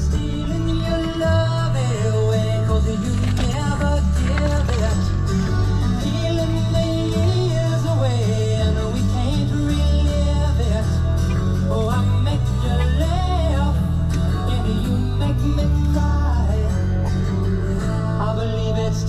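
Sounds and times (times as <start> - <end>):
rock song on car radio: 0.0 - 19.0.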